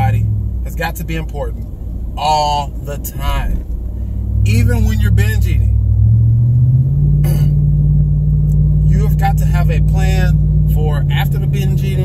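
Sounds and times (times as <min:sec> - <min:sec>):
vehicle engine droning: 0:00.0 - 0:12.0
person clearing throat: 0:07.2 - 0:07.6.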